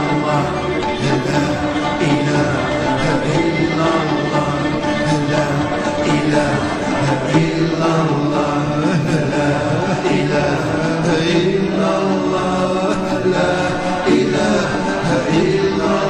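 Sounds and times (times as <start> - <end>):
voices chanting long notes: 0.0 - 16.0.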